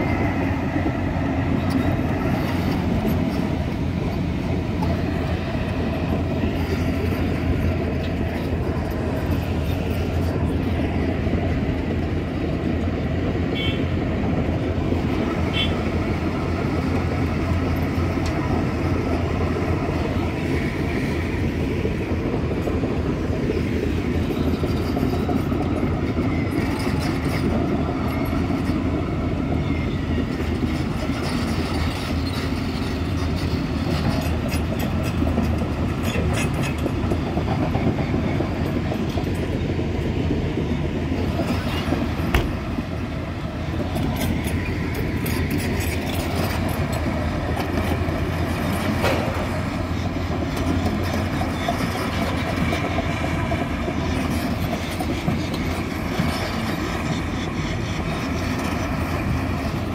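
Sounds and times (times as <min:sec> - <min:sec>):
excavator engines and hydraulics: 0:00.0 - 0:59.9.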